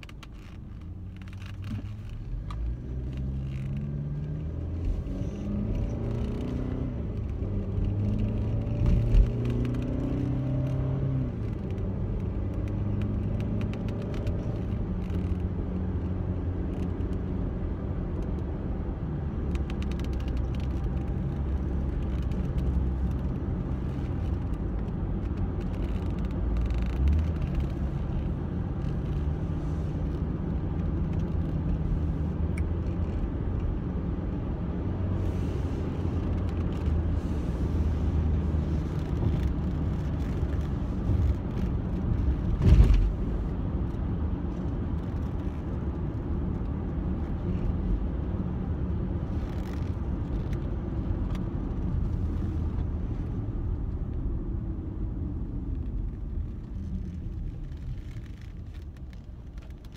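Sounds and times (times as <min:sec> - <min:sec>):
car engine from inside cabin: 0:00.0 - 0:59.9
road rumble: 0:00.0 - 0:59.9.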